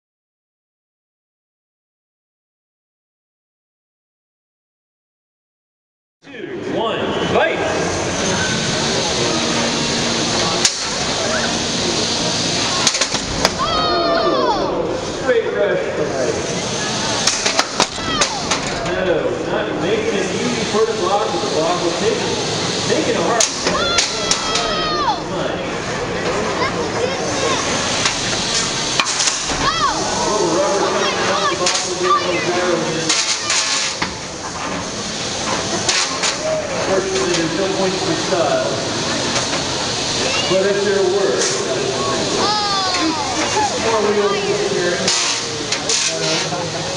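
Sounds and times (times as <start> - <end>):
steady arena noise: 6.2 - 46.9
faint background chatter: 7.1 - 46.9
robot hitting with sharp knock: 12.8 - 13.7.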